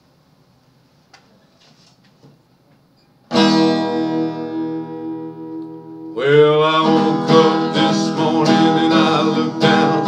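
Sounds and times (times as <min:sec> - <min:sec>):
acoustic guitar chord strummed: 0:03.2 - 0:10.0.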